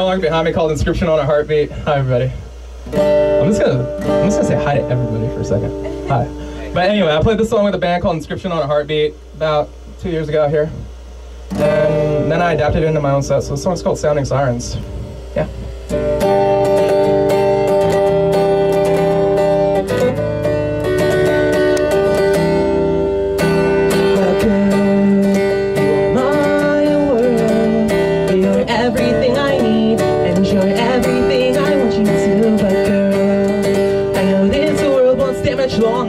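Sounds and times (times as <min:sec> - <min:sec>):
acoustic guitar strumming: 0:00.0 - 0:36.0
man singing: 0:23.9 - 0:36.0.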